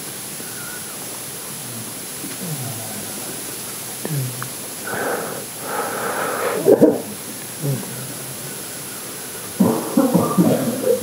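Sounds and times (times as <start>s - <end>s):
person breathing sounds: 4.0s - 9.7s.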